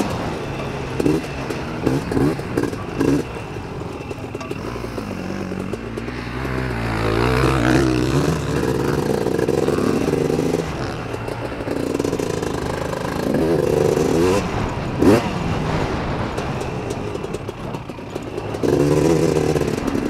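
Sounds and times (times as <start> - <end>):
atv two-stroke engine revving: 0.0 - 20.0.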